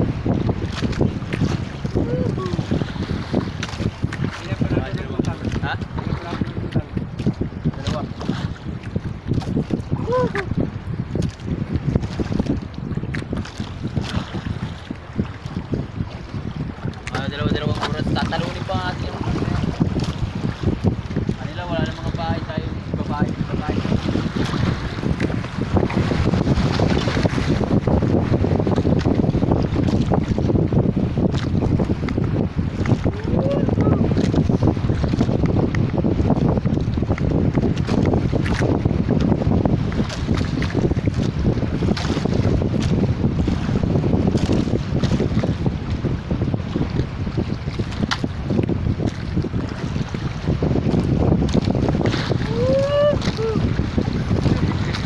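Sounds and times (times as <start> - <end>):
water against boat: 0.0 - 55.0
wind buffeting microphone: 0.0 - 55.0.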